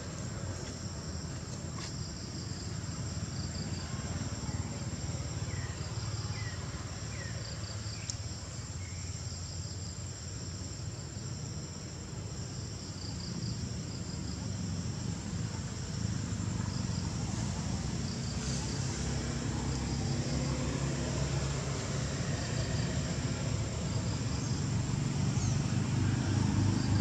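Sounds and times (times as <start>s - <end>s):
insects chirping: 0.0s - 27.0s.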